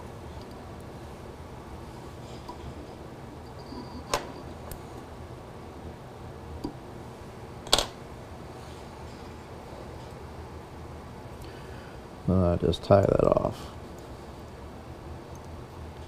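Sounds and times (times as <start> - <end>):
room hum: 0.0 - 16.0.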